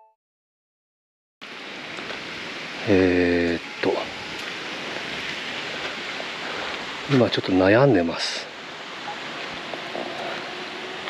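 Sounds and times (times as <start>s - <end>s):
steady outdoor background rush: 1.4s - 11.0s.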